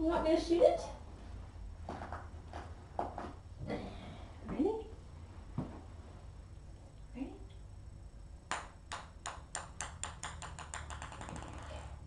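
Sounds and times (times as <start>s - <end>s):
ping pong ball bouncing on floor: 8.5s - 12.0s.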